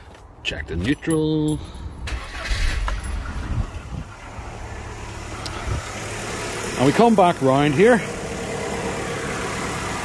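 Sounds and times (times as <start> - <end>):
car engine starting and idling: 1.5 - 10.0.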